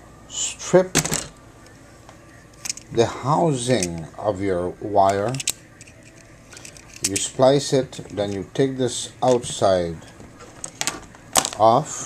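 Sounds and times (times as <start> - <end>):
man speaking: 0.3 - 1.9, 2.9 - 5.5, 7.0 - 10.2, 11.5 - 12.0.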